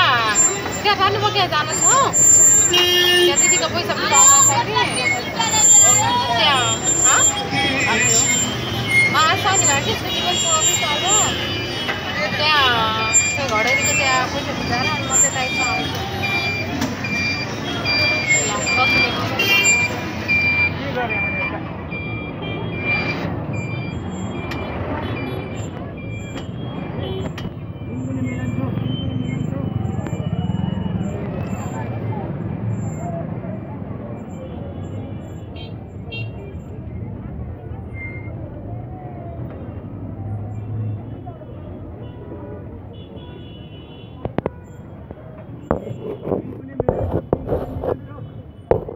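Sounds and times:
people talking: 0.0 - 23.3, 24.5 - 35.5, 40.8 - 43.0, 44.0 - 48.9
vehicle warning beeper: 0.0 - 33.1
people's voices: 0.0 - 48.9
street traffic: 0.0 - 48.9.

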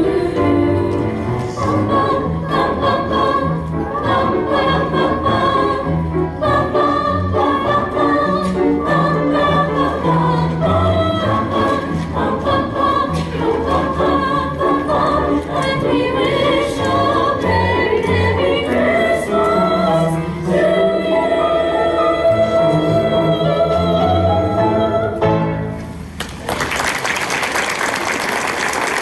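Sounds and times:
children's choir singing: 0.0 - 25.7
upright piano: 0.0 - 26.2.

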